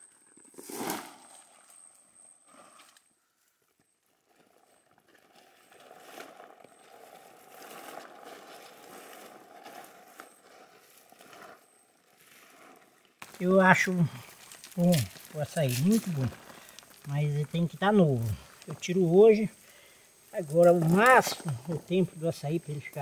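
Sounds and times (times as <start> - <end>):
faint forest background: 0.0 - 23.0
fruit bunches crashing on leaves: 0.5 - 1.4, 13.2 - 19.4.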